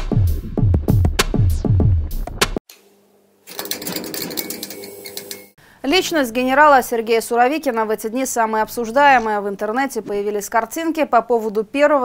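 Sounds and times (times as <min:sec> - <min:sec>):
electric neon buzz: 0:02.7 - 0:05.6.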